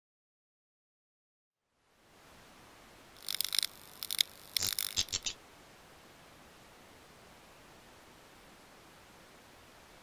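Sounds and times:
faint steady hiss: 0:01.6 - 0:10.0
crackly high-pitched hissing bursts: 0:03.2 - 0:05.4.

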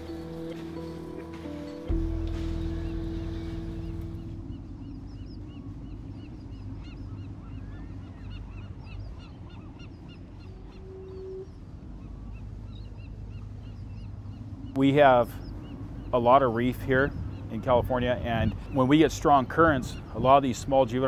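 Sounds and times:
held music tones: 0:00.0 - 0:08.1
flock of birds calling: 0:00.0 - 0:21.0
low steady rumble: 0:00.0 - 0:21.0.

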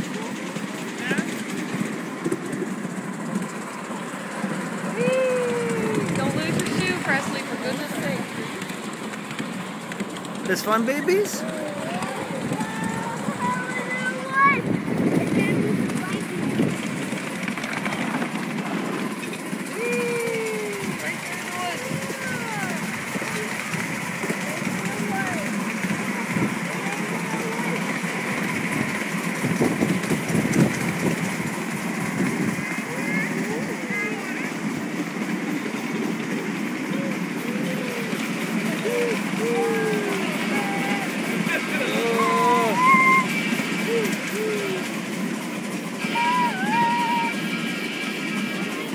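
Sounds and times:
miniature train rumbling: 0:00.0 - 0:48.9
passengers' voices: 0:00.0 - 0:48.9
train cars rattling: 0:00.0 - 0:48.9.

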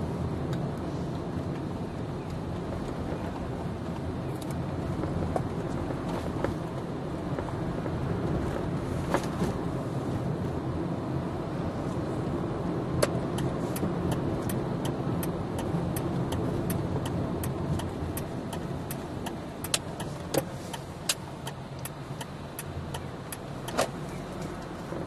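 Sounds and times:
car engine and road rumble: 0:00.0 - 0:25.0
turn signal ticking: 0:12.3 - 0:25.0.

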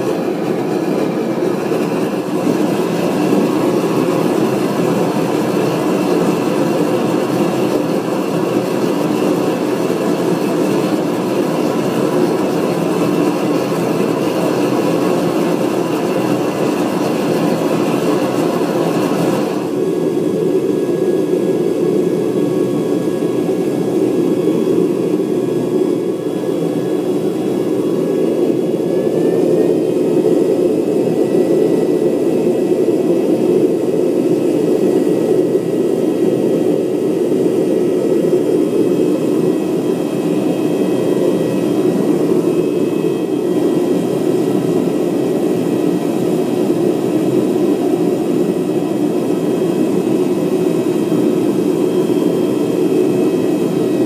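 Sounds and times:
gas burner rushing roar: 0:00.0 - 0:54.0.

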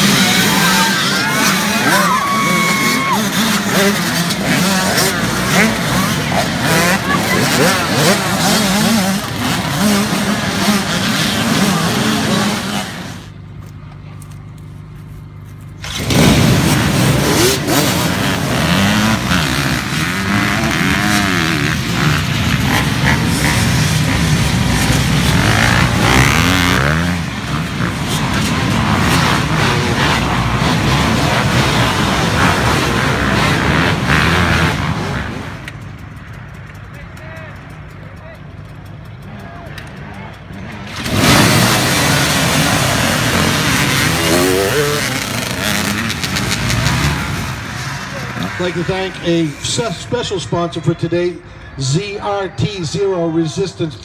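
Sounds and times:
motocross bike engines revving: 0:00.0 - 0:54.0.

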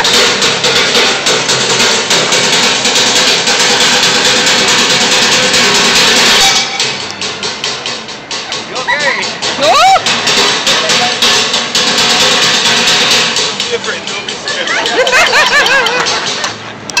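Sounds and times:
drumming on plastic buckets: 0:00.0 - 0:17.0.

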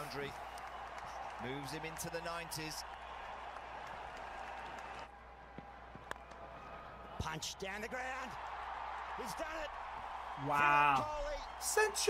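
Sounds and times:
stadium crowd applauding: 0:00.0 - 0:12.0.

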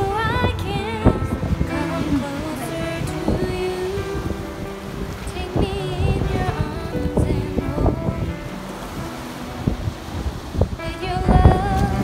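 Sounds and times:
sea waves splashing on rocks: 0:00.0 - 0:12.0
soft music: 0:00.0 - 0:12.0
wind on microphone: 0:00.0 - 0:12.0.

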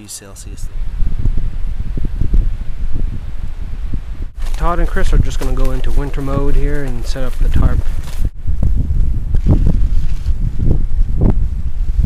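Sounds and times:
wind buffeting microphone: 0:00.4 - 0:12.0
leaves rustling: 0:04.4 - 0:08.3, 0:09.4 - 0:10.6.

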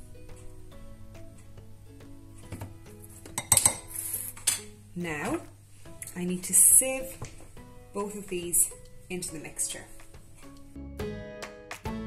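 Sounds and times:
soft music with plucked notes: 0:00.0 - 0:12.0
spoon clinking against bowl: 0:03.4 - 0:03.9.

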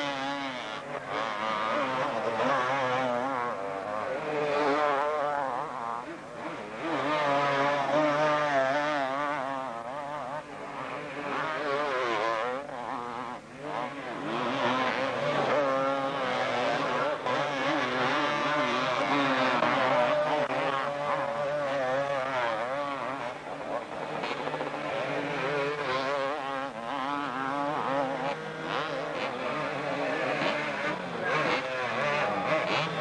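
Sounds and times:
motocross bike engines revving: 0:00.0 - 0:33.0
wheels spinning in mud: 0:00.0 - 0:33.0.

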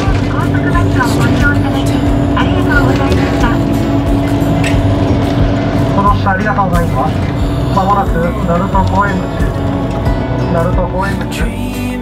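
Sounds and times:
bus engine and road drone: 0:00.0 - 0:12.0
indistinct voices: 0:00.0 - 0:12.0.

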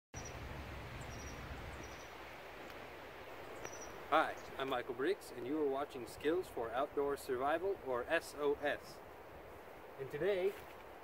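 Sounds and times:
outdoor background noise: 0:00.2 - 0:11.0.

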